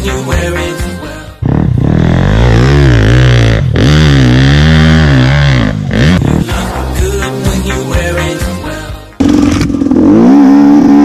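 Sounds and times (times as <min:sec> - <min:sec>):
background song: 0:00.0 - 0:01.5, 0:06.0 - 0:09.7
dirt bike engine revving: 0:01.4 - 0:07.9, 0:09.2 - 0:11.0.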